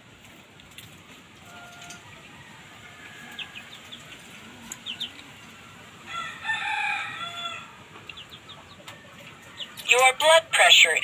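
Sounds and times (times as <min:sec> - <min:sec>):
rooster crowing: 0:01.5 - 0:03.8, 0:06.0 - 0:07.9.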